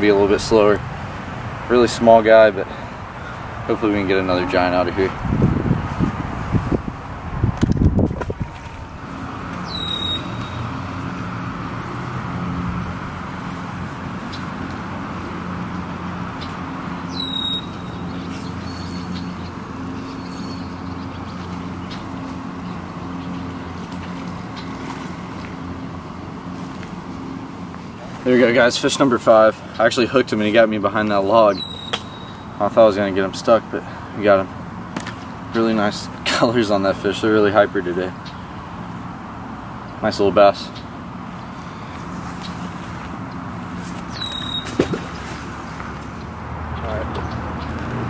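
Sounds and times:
distant engine humming: 0.0 - 48.0
low rumbling bumps: 4.9 - 9.6
bird chirps: 9.6 - 10.8, 16.4 - 23.5, 31.5 - 32.6, 44.1 - 45.3.

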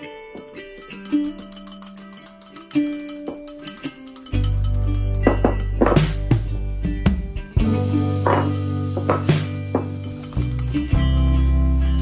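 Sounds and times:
background music: 0.0 - 12.0
whisk clicking against bowl: 0.4 - 5.8, 9.0 - 11.4.

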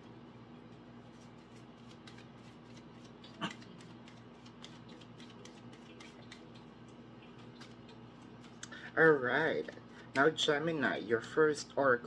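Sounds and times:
cards being shuffled: 1.1 - 6.5.

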